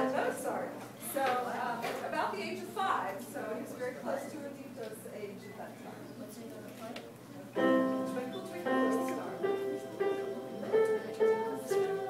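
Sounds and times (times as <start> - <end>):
electronic keyboard melody: 7.6 - 12.0.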